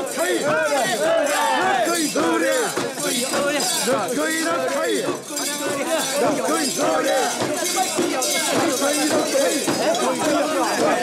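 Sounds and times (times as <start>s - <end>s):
people shouting in chorus: 0.0s - 5.2s, 5.9s - 7.5s
metal fittings jingling: 0.0s - 11.0s.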